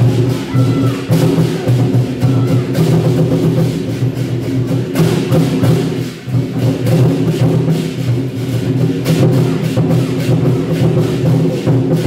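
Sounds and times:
hand cymbals clashing: 0:00.0 - 0:12.0
war drums beaten: 0:00.0 - 0:12.0.

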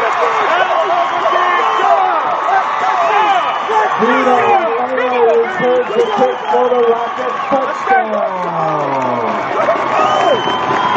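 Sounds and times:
crowd noise: 0:00.0 - 0:10.9
man shouting: 0:03.8 - 0:09.3.

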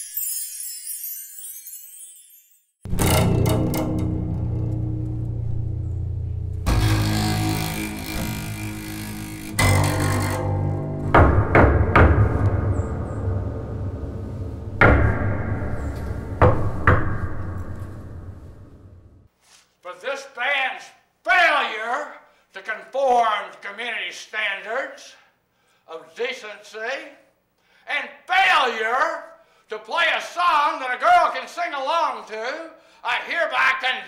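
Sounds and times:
electric bass low notes: 0:02.9 - 0:19.3
sharp hits: 0:02.9 - 0:19.3.

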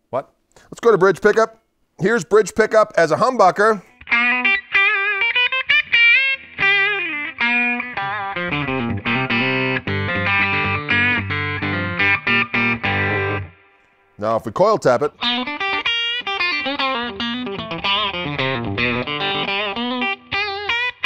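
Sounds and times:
electric guitar through an amp: 0:03.9 - 0:14.0, 0:15.1 - 0:21.0.

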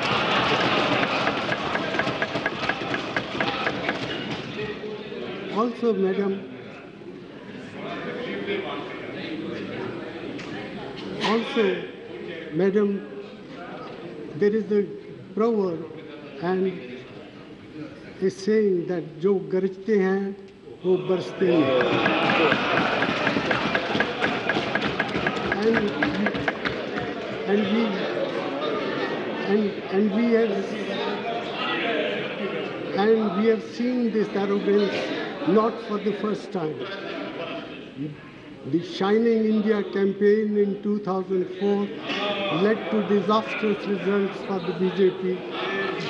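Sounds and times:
thumping on wooden desks: 0:00.0 - 0:04.5, 0:21.8 - 0:27.3
crowd noise: 0:00.0 - 0:46.0
murmur of voices: 0:00.0 - 0:46.0.

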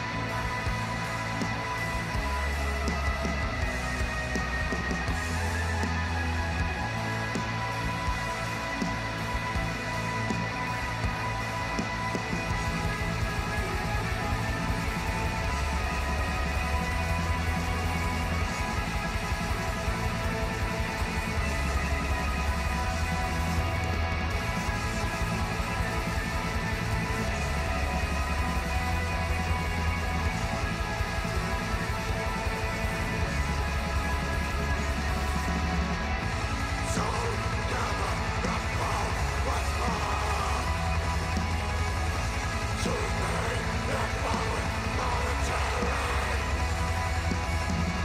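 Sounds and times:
bass notes: 0:00.0 - 0:48.0
distorted guitars: 0:00.0 - 0:48.0
fast drumming: 0:00.0 - 0:48.0.

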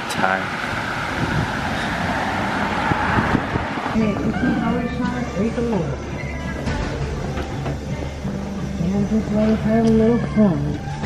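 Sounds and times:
car traffic going by: 0:00.0 - 0:06.6.

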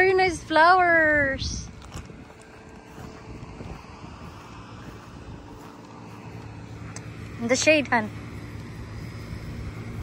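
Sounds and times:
faint hum: 0:00.0 - 0:10.0
low outdoor rumble: 0:00.0 - 0:10.0.

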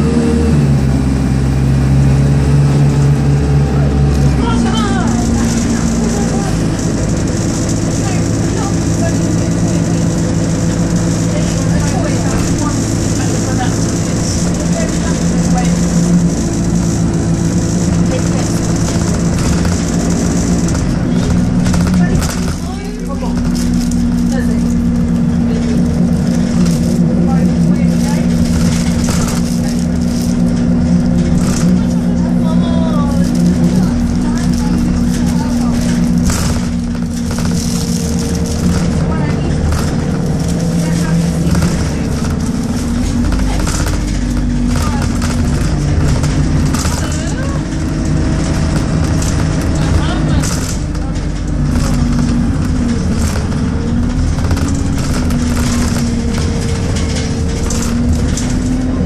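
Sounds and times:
bus diesel engine drone: 0:00.0 - 0:59.0
interior panels rattling: 0:04.4 - 0:59.0.

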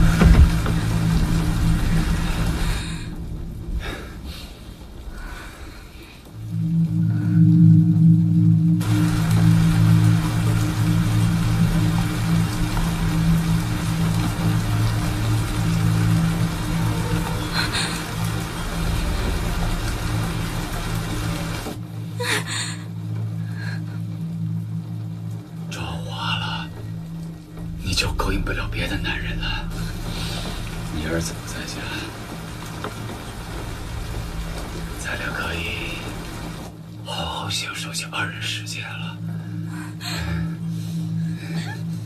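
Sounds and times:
rain on car: 0:00.0 - 0:07.5, 0:08.3 - 0:42.0
low droning film score: 0:00.0 - 0:42.0.

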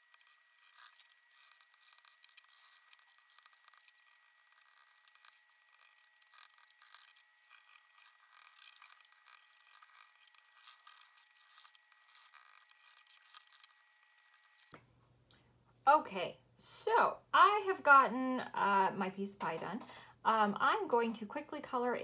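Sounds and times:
pastels scratching on paper: 0:00.0 - 0:14.8.

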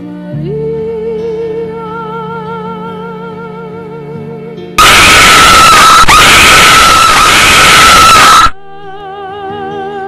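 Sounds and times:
soft music with vibrato melody: 0:00.0 - 0:04.8
loud sustained scream: 0:04.8 - 0:08.6.

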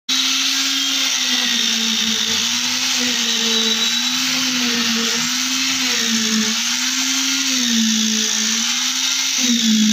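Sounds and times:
concrete vibrator motor hum: 0:00.1 - 0:09.9.

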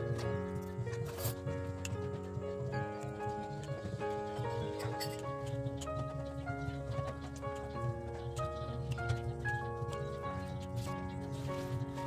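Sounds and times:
light ticking percussion: 0:00.0 - 0:12.0
low accompaniment: 0:00.0 - 0:12.0
melody of held notes: 0:00.0 - 0:12.0.

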